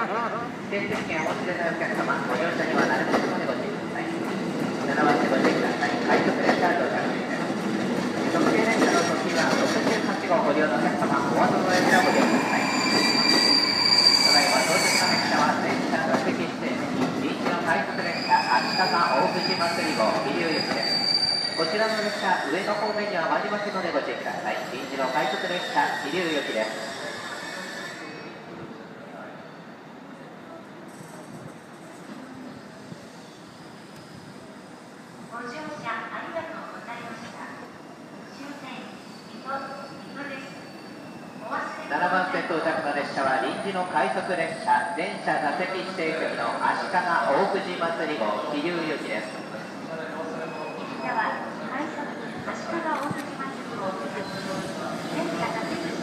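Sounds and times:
people talking: 0:49.9 - 0:56.0.

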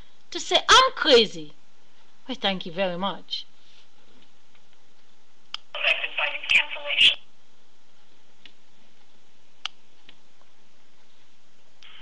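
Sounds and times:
tinny phone loudspeaker sound: 0:05.8 - 0:07.3.

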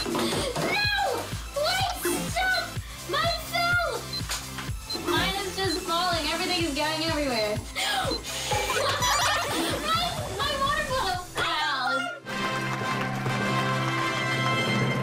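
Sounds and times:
music with a steady beat: 0:00.0 - 0:10.4.

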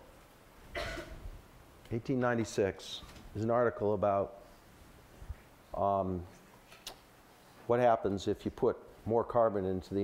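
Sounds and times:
person coughing: 0:00.7 - 0:01.2.

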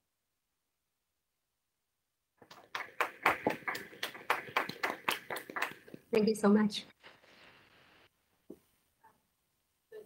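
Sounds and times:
people clapping: 0:02.4 - 0:06.1.

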